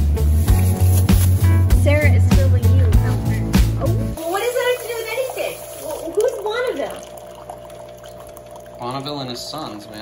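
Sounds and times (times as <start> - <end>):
coffee trickling into a mug: 4.2 - 10.0.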